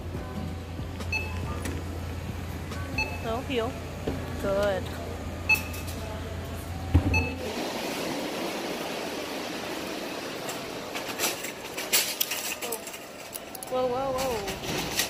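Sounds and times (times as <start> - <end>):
outdoor background noise: 0.0 - 15.0
store interior hum: 0.0 - 15.0.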